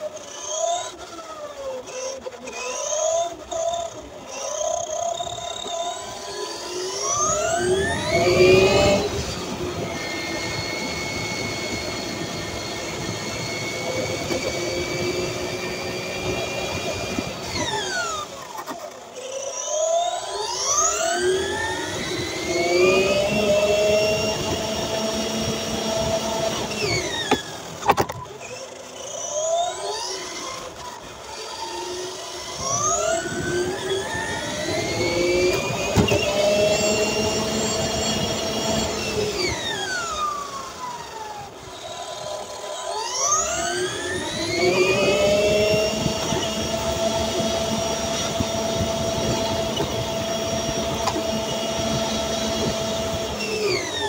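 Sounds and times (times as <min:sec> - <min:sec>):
toy car electric motor whine: 0:00.0 - 0:54.0.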